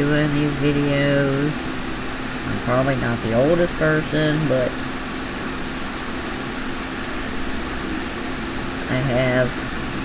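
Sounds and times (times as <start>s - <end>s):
fan whirring: 0.0s - 10.0s.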